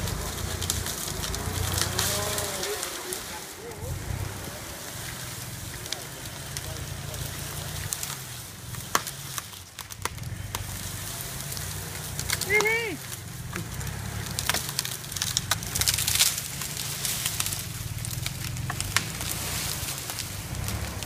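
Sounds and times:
footsteps on dry leaves: 0:00.0 - 0:21.0.

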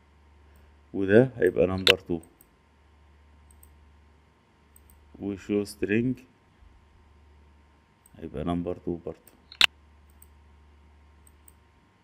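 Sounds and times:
faint mouse clicks: 0:03.4 - 0:03.8, 0:04.7 - 0:05.0, 0:09.2 - 0:10.4, 0:11.2 - 0:11.6.

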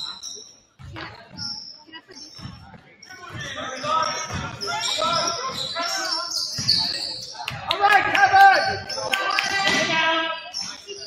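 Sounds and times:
voices echoing: 0:00.0 - 0:11.0
basketball bouncing on hardwood: 0:02.2 - 0:03.5.

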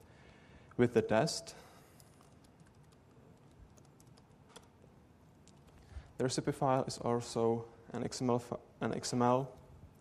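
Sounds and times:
soft keyboard typing: 0:02.0 - 0:04.8, 0:05.4 - 0:05.9.

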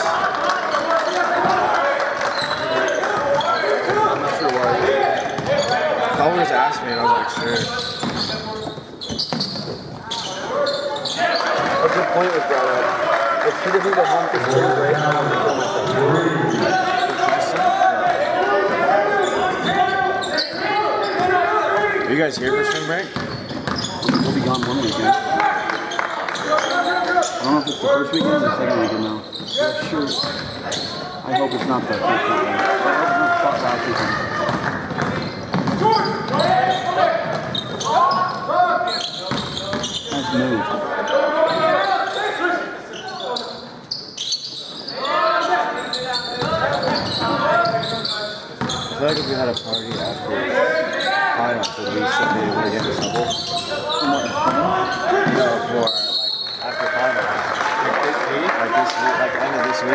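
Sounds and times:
people talking: 0:02.6 - 0:08.8, 0:10.1 - 0:23.2, 0:23.8 - 0:25.8, 0:26.4 - 0:35.2, 0:44.9 - 0:59.9.

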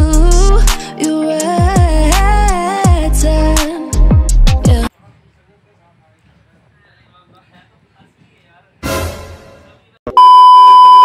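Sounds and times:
loud electronic beep: 0:09.4 - 0:11.0.

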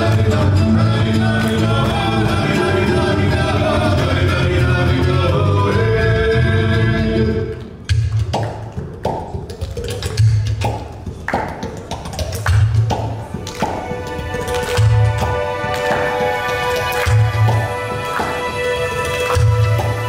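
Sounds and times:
folk dance music: 0:00.0 - 0:20.0
sharp handclaps: 0:07.6 - 0:20.0.

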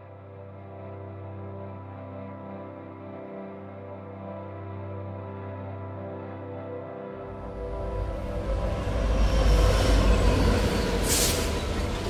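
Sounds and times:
diesel locomotive rumbling: 0:07.3 - 0:12.0
air hiss: 0:11.0 - 0:11.6.

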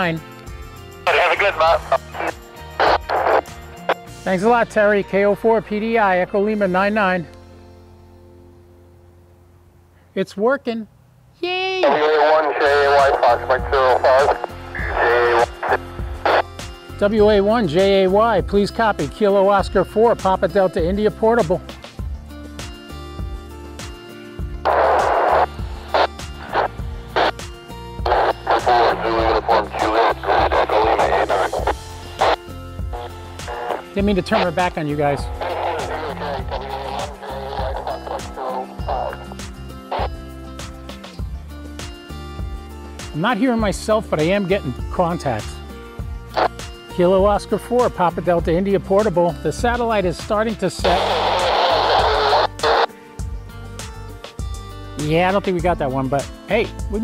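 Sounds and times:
music with low held notes: 0:00.0 - 0:09.9, 0:12.4 - 0:57.0
garbled radio voices: 0:01.0 - 0:06.2, 0:11.5 - 0:18.0, 0:24.6 - 0:27.4, 0:28.0 - 0:40.2, 0:46.3 - 0:47.2, 0:50.6 - 0:52.9.

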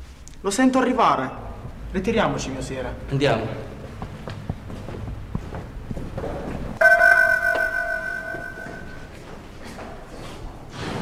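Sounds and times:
bell-like musical note ringing: 0:06.8 - 0:09.1.

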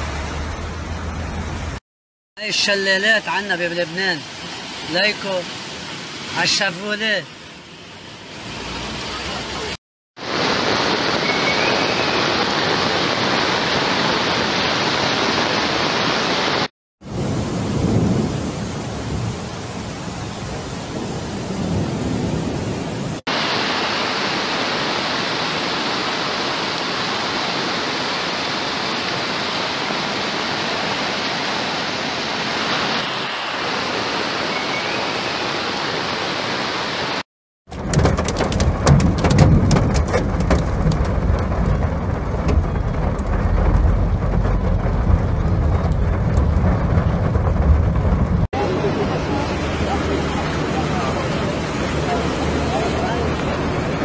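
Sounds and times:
heavy rain hiss: 0:02.4 - 0:37.2
rain pattering on car window: 0:37.7 - 0:48.5
deep rumble: 0:37.7 - 0:52.9.

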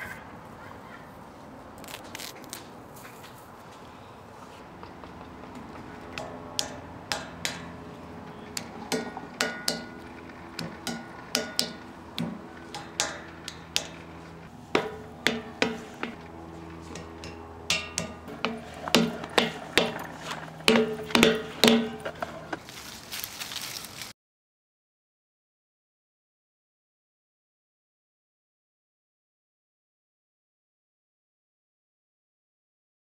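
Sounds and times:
knocks on hollow metal statue: 0:08.9 - 0:10.0, 0:10.6 - 0:13.2, 0:14.7 - 0:16.2, 0:17.2 - 0:20.0, 0:20.6 - 0:22.2.

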